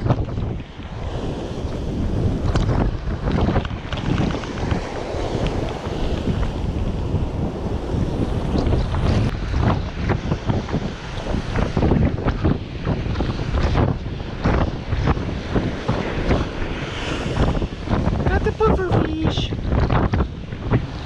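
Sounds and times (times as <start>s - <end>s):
surf washing onto beach: 0.0s - 21.0s
wind buffeting microphone: 0.0s - 21.0s.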